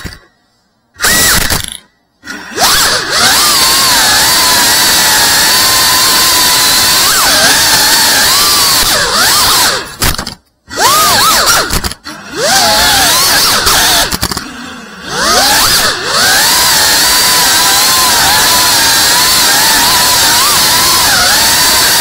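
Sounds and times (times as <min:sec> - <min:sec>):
drone motors whining: 0:01.0 - 0:22.0.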